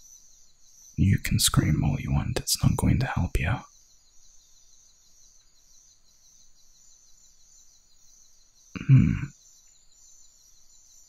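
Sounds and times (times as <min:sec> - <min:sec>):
faint high-pitched pulsing ambience: 0:00.0 - 0:11.0
deep male voice humming: 0:08.8 - 0:09.3.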